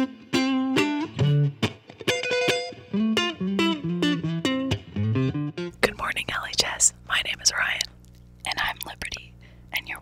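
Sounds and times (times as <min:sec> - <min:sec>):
faint steady hum: 0:05.7 - 0:10.0
woman talking: 0:05.8 - 0:07.9, 0:08.5 - 0:10.0.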